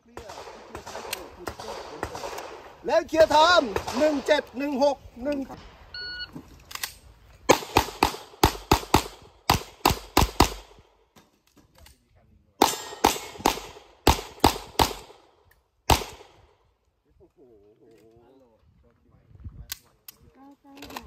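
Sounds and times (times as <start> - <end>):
pistol shots: 0.1 - 4.7, 7.5 - 10.9, 12.6 - 16.4.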